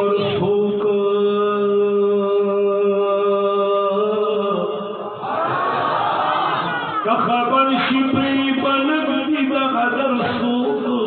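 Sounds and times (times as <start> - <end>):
person chanting with heavy echo: 0.0 - 5.3, 6.9 - 11.0.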